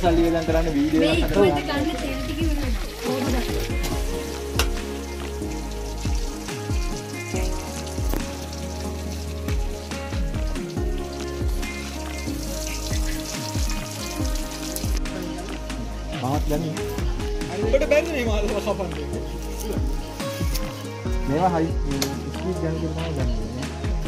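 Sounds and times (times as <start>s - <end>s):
music with deep repeating bass: 0.0s - 24.0s.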